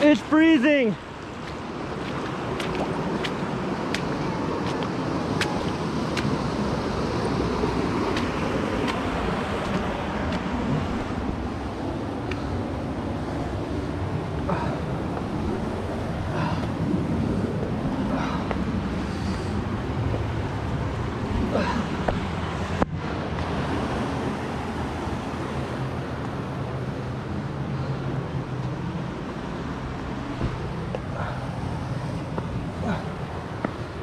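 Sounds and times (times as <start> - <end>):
creek rushing over rocks: 0.0 - 12.3.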